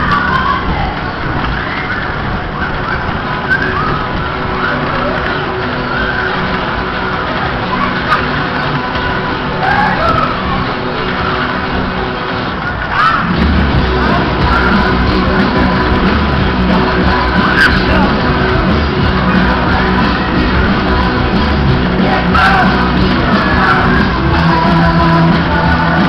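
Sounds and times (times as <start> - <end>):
loud music over sound system: 2.1 - 26.0
heavy bass line: 2.2 - 26.0.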